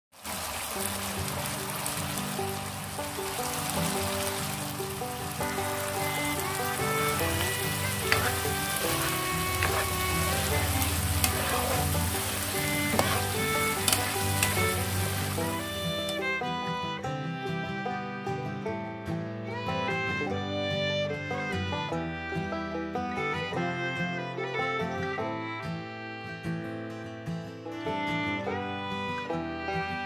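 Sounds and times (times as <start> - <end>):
chicken sizzling in a pan: 0.1 - 16.2
background music: 1.3 - 30.0.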